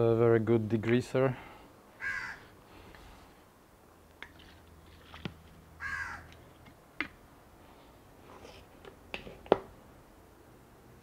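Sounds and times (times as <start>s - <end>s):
crow cawing: 2.0s - 2.5s, 5.8s - 6.3s.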